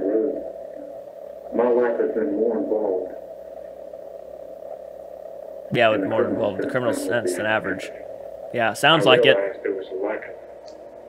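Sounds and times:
cassette tape hum and hiss: 0.0s - 11.0s.

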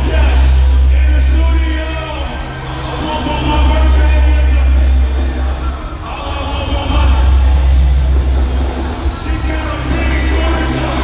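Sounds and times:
hip-hop concert music: 0.0s - 11.0s.

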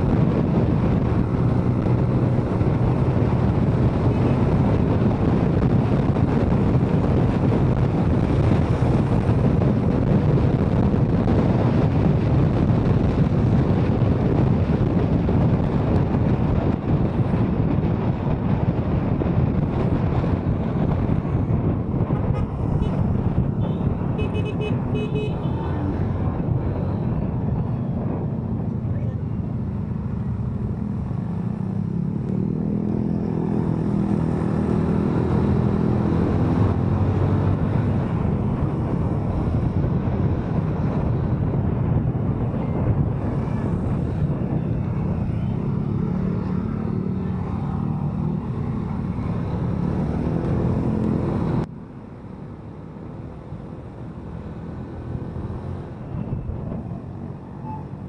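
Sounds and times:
wind on microphone: 0.0s - 58.0s
horn tooting: 22.3s - 25.8s.

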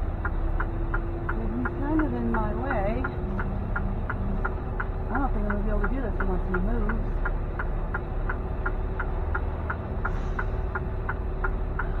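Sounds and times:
diesel engine idling: 0.0s - 12.0s
turn-signal flasher ticking: 0.0s - 12.0s.

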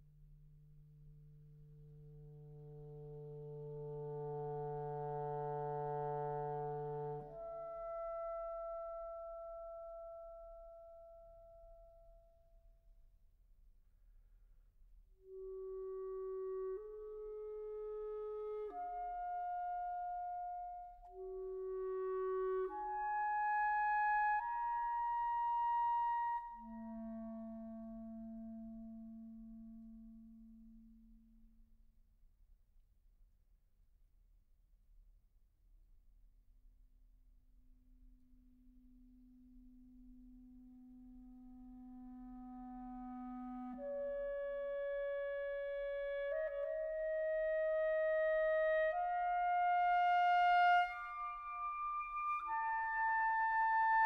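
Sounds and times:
clarinet low note: 2.2s - 11.6s, 15.2s - 30.9s, 42.0s - 54.0s.

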